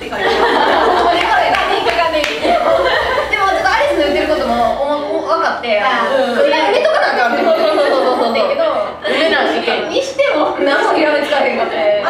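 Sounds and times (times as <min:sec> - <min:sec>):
young women laughing: 0:00.0 - 0:04.2
hand claps: 0:01.1 - 0:02.6.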